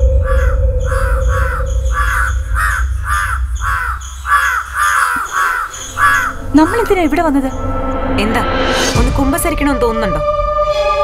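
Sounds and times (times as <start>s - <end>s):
birds cawing: 0.0s - 7.8s
low rumble: 0.0s - 9.6s.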